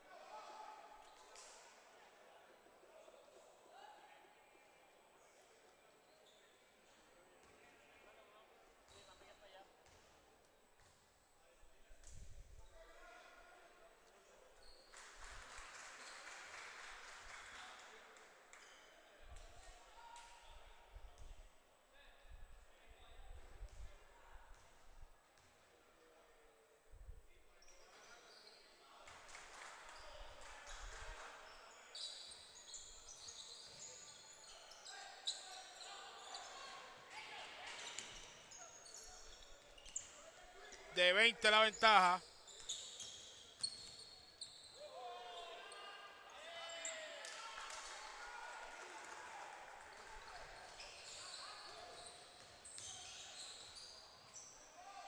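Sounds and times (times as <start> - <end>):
faint echoing voices: 41.0 - 42.2.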